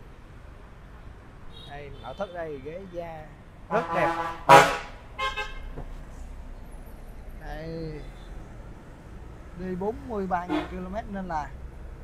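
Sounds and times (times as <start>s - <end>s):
vehicle horn toots: 3.7s - 5.7s, 10.5s - 10.9s.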